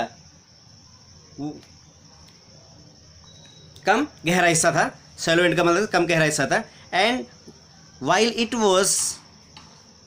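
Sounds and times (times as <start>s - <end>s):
faint high-pitched background noise: 0.0s - 10.0s.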